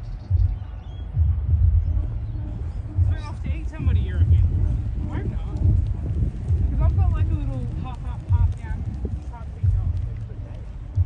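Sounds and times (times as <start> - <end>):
footsteps: 0.5 - 11.0
people chatting: 3.0 - 11.0.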